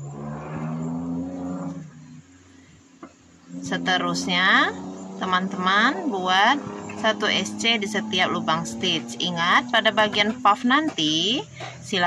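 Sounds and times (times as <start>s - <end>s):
vehicle engine droning: 0.0s - 12.0s.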